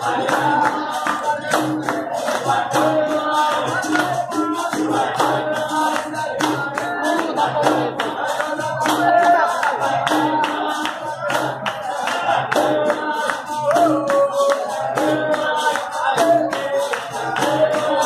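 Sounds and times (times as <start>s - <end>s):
berimbaus playing rhythm: 0.0s - 18.0s
group singing: 0.0s - 18.0s
hand drum: 0.0s - 18.0s
people clapping: 0.0s - 18.0s
sharp percussion strokes: 0.0s - 18.0s.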